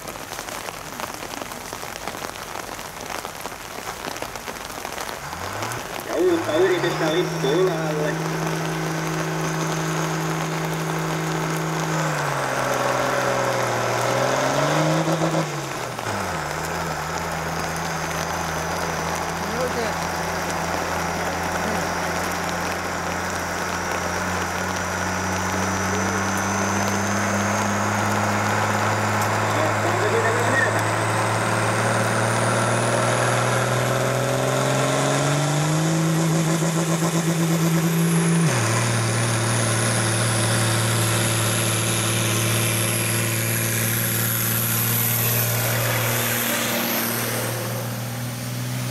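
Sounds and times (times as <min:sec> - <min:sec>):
tractor diesel engine under load: 0:00.0 - 0:48.9.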